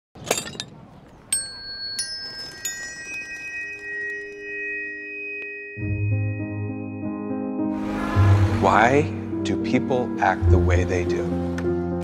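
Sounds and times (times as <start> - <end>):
tuning forks ringing: 1.4 - 6.4.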